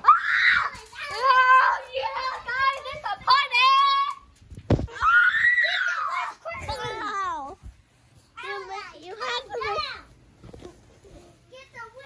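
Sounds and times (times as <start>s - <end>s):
child screaming: 0.0s - 2.0s, 4.9s - 7.1s.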